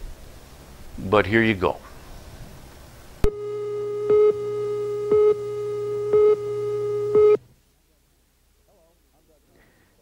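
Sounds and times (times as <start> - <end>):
louder beeps: 3.2 - 7.4
steady buzzy line-up tone: 3.2 - 7.4.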